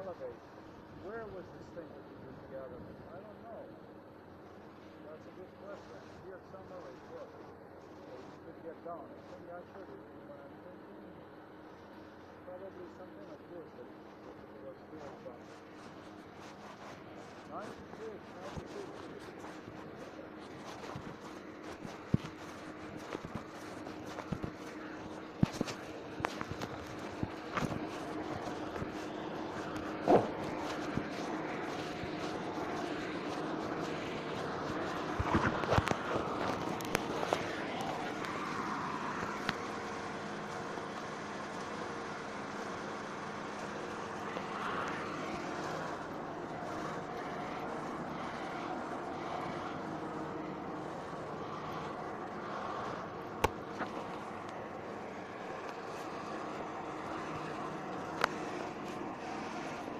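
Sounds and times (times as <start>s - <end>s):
steady background hum: 0.0s - 59.9s.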